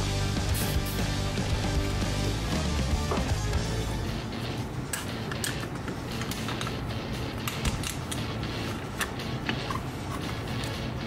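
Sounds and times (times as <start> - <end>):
background music: 0.0 - 11.0
pliers clicking on metal spring: 7.4 - 8.3.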